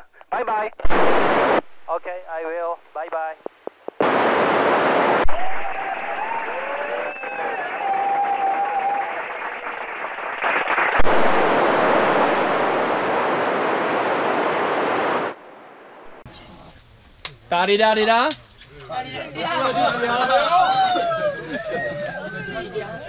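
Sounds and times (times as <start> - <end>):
radio receiver hiss: 0.0 - 7.7, 9.0 - 18.3.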